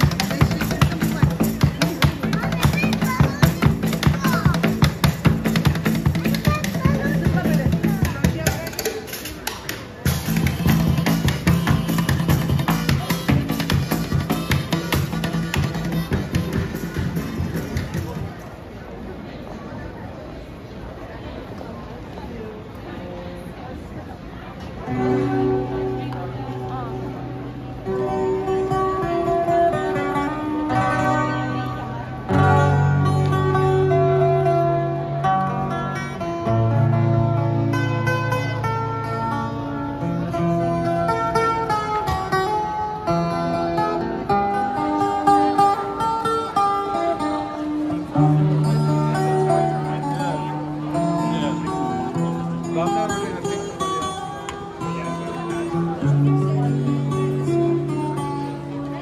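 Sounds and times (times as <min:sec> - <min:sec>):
acoustic guitar strumming chords: 0:24.9 - 0:59.0.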